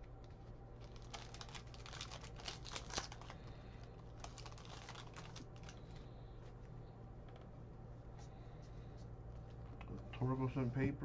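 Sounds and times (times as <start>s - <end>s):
foil wrapper crinkling and tearing: 0.8s - 6.1s.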